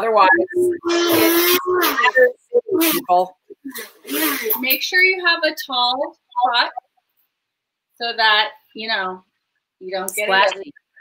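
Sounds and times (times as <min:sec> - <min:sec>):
woman making wordless sounds: 0:00.0 - 0:06.9, 0:09.9 - 0:10.9
brief hiss: 0:03.8 - 0:04.6.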